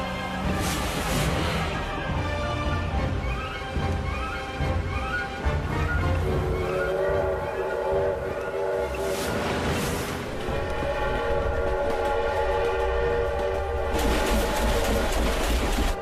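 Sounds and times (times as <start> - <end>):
moving train rumble: 0.0 - 16.0
train horn chord: 6.2 - 15.1
rushing clatter: 9.2 - 16.0.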